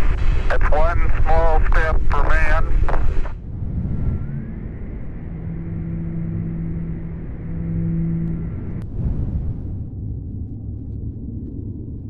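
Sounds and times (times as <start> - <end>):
deep steady rumble: 0.0 - 12.0.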